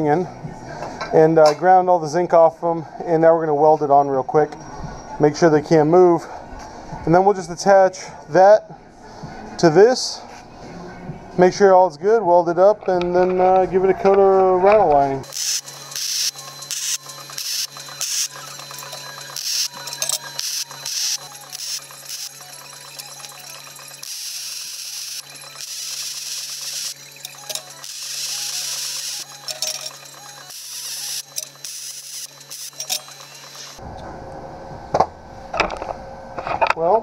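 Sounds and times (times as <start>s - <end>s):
welder arc crackling and hissing: 15.2s - 33.8s.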